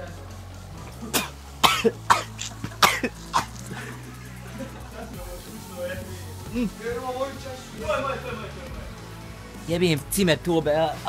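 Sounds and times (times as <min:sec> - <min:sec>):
young man coughing hard: 0:01.0 - 0:04.1.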